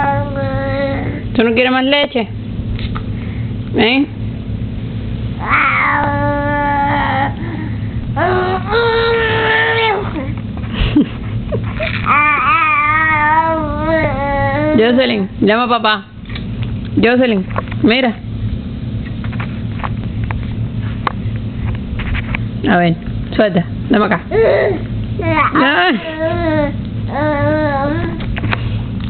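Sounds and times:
baby whining: 0.0s - 1.2s, 5.4s - 10.4s, 11.8s - 14.9s, 24.3s - 28.3s
steady low hum: 0.0s - 29.0s.

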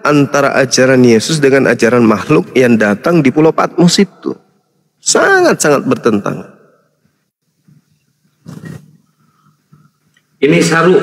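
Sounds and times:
man speaking: 0.0s - 6.6s, 10.4s - 11.0s
breath noise on microphone: 8.4s - 10.1s.

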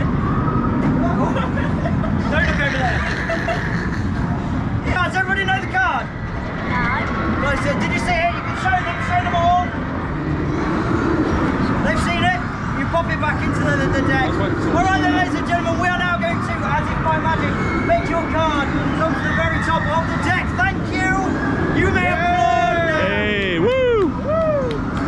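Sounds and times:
outdoor background noise: 0.0s - 25.0s.

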